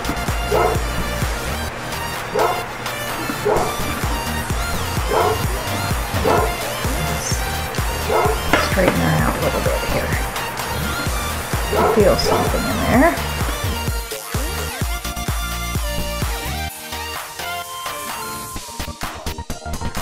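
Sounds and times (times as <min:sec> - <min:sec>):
background music with steady beat: 0:00.0 - 0:20.0
dog yipping: 0:00.5 - 0:01.1, 0:02.3 - 0:08.7, 0:10.8 - 0:13.3.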